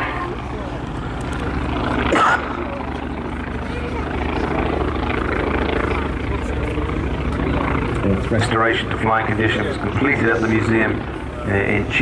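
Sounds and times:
aircraft radial engine droning: 0.0s - 12.0s.

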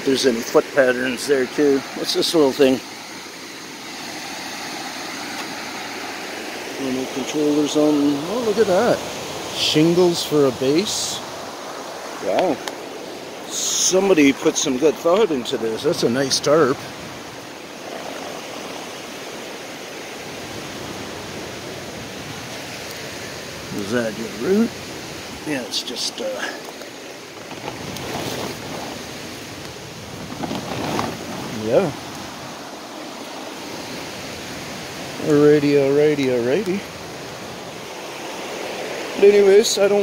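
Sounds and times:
river water rushing: 0.0s - 40.0s.

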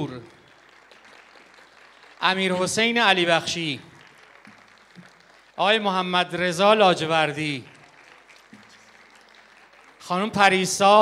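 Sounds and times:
faint audience applause: 0.0s - 11.0s.

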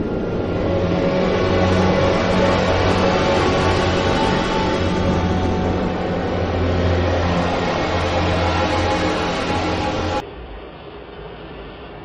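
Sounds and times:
dramatic orchestral music: 0.0s - 10.2s
deep rumble: 0.0s - 11.2s.

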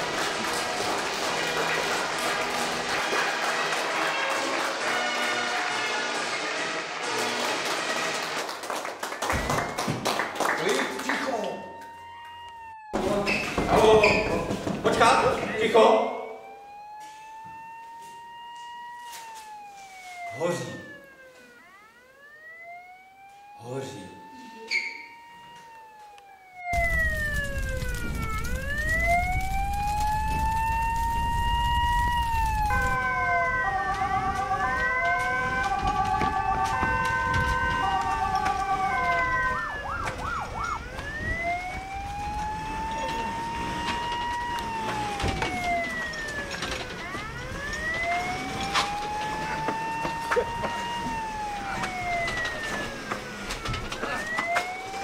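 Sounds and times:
siren wailing: 0.0s - 8.5s, 9.1s - 55.0s.

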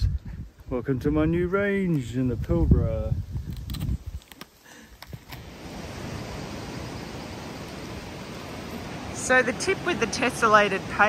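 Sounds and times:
wind: 0.0s - 11.0s
surf on rocky shore: 5.3s - 11.0s.

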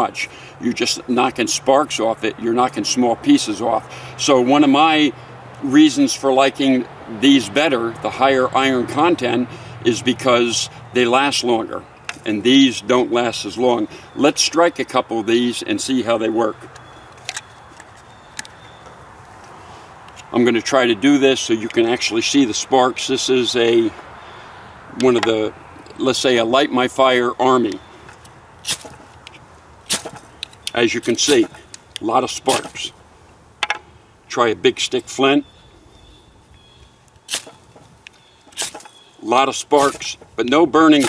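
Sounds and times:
outdoor background hiss: 0.0s - 41.0s
blade rasping on fire-starting rod: 28.6s - 29.1s, 29.9s - 30.3s, 37.3s - 37.8s, 38.5s - 39.0s.

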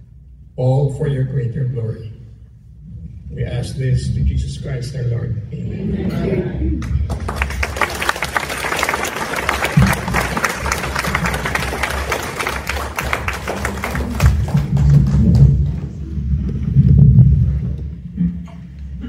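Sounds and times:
audience applauding: 6.8s - 15.9s
loud low rumble: 13.5s - 18.2s.

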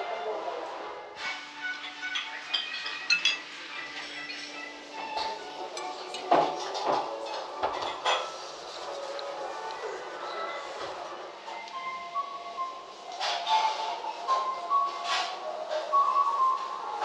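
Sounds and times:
soft background music: 0.0s - 17.0s
tableware clinking: 1.4s - 8.6s.

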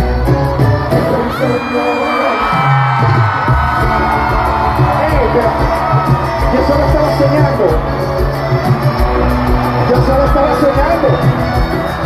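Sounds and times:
crowd cheering: 0.0s - 12.0s
live concert music: 0.0s - 12.0s.

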